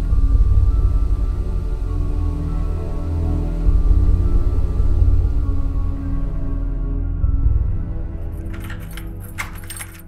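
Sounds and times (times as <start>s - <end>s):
low sustained music tones: 0.0s - 10.0s
metallic jangling and clinking: 8.2s - 10.0s.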